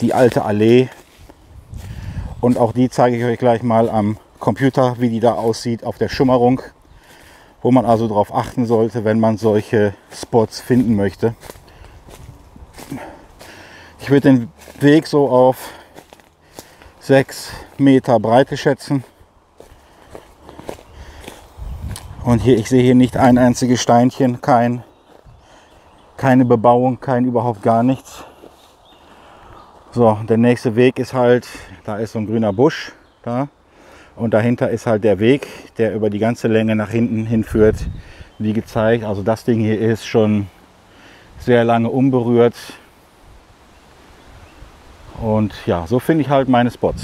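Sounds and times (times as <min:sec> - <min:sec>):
footsteps on dry leaves: 0:00.0 - 0:30.0
light wind through trees: 0:00.0 - 0:47.0.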